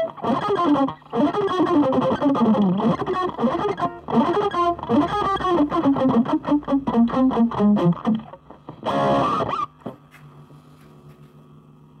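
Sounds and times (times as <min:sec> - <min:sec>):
guitar amplifier hum: 0:00.0 - 0:12.0.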